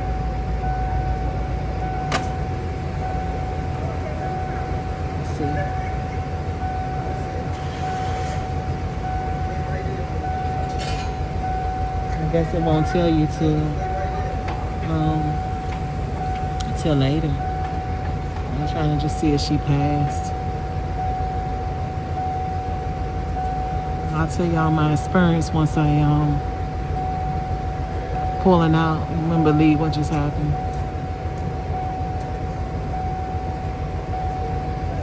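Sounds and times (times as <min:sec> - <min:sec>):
car engine idling: 0:00.0 - 0:35.0
thin steady whine: 0:00.0 - 0:35.0.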